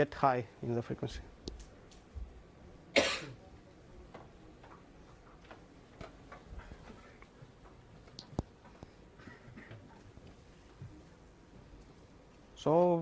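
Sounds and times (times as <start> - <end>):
person coughing: 2.9 - 3.4, 9.2 - 9.9.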